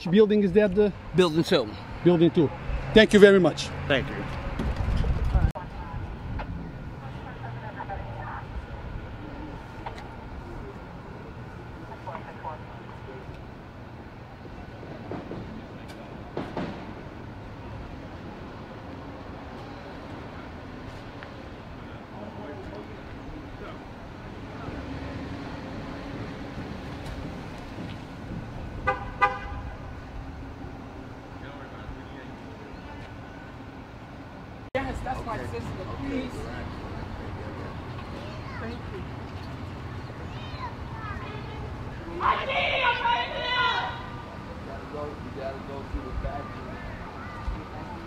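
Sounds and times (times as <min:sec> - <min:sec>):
distant traffic rumble: 0:00.0 - 0:48.0
faint indistinct voices: 0:04.2 - 0:28.9, 0:29.5 - 0:48.0
car horn toots: 0:28.8 - 0:29.8.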